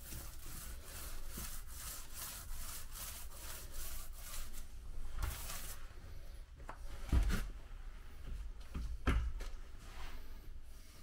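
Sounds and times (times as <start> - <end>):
paint roller rubbing strokes: 0.0 - 6.4.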